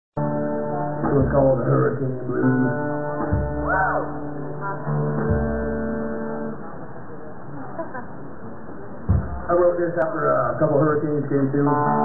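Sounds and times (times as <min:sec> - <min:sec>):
guitar chord ringing: 0:00.2 - 0:06.8, 0:11.4 - 0:12.0
low thump: 0:09.1 - 0:09.5.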